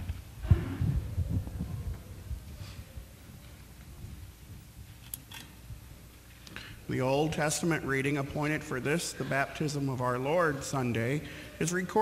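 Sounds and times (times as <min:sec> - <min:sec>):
rustling of people moving: 0:00.0 - 0:12.0.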